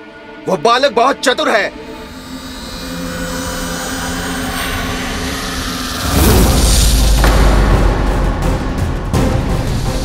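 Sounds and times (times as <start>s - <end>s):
dramatic drone score: 0.0s - 10.0s
deep rumble: 1.7s - 10.0s.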